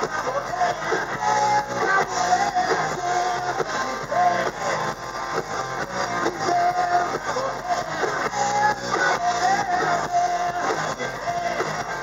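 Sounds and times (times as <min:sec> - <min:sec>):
bass: 0:00.0 - 0:12.0
distorted electric guitars: 0:00.0 - 0:12.0
drums: 0:00.0 - 0:12.0.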